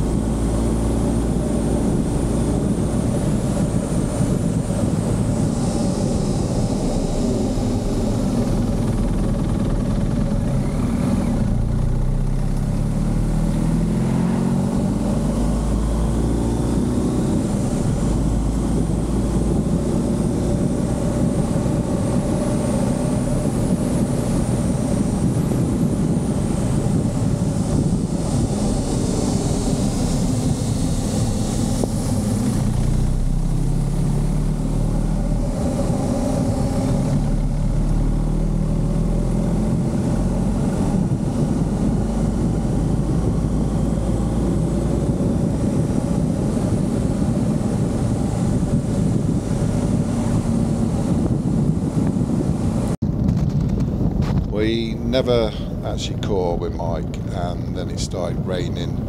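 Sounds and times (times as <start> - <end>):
motorcycle engine running: 0.0 - 55.8
wind rushing past microphone: 0.0 - 59.0.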